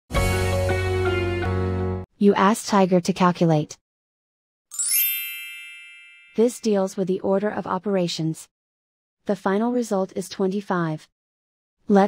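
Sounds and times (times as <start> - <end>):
high-pitched chime ding: 4.7 - 6.6.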